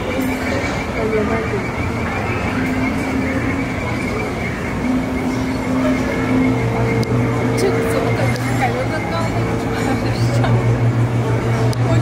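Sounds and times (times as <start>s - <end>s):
indistinct chatter of voices: 0.0s - 12.0s
steady high tone: 0.0s - 12.0s
steady low hum: 0.0s - 12.0s.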